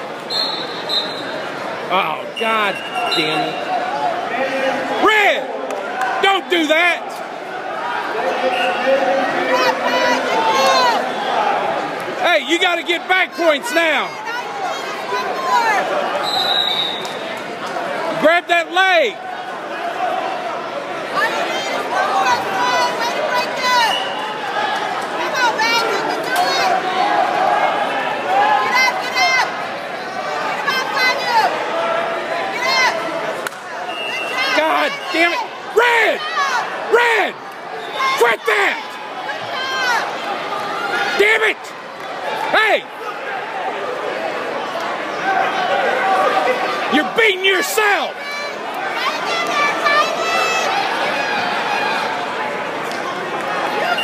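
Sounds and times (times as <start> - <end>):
crowd talking and yelling: 0.0 - 54.0
loud shouts: 0.3 - 17.3, 18.0 - 52.4.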